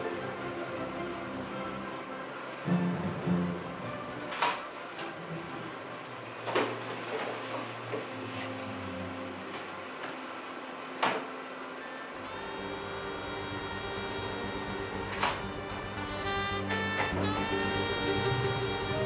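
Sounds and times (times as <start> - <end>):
soft background music: 0.0 - 19.0.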